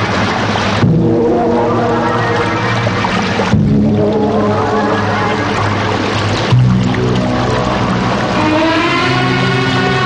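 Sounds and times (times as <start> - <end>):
low held chords film score: 0.0 - 10.0.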